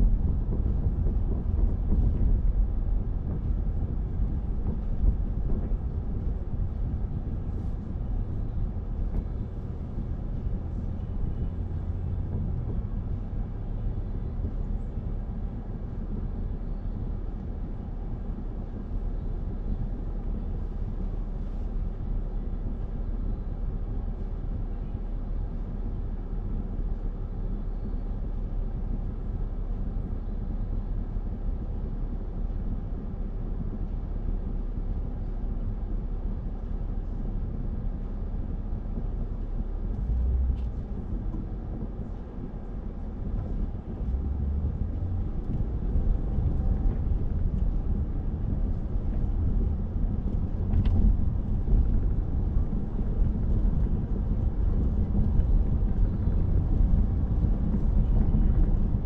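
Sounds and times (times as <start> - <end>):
car road rumble: 0.0 - 59.0.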